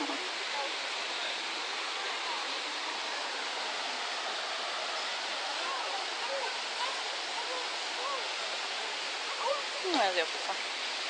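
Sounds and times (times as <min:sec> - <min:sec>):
faint voices: 0:00.0 - 0:10.8
flowing water: 0:00.0 - 0:11.0.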